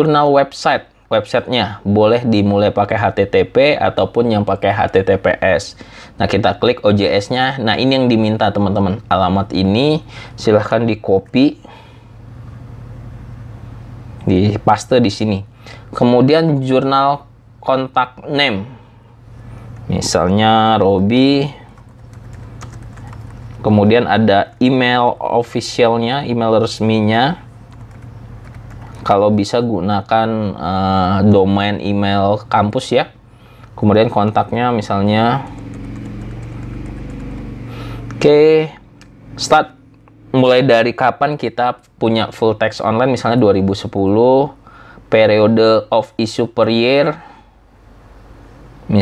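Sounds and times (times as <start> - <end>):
low background hum: 0.0 - 49.0
computer keyboard taps: 21.8 - 23.5, 35.6 - 37.5.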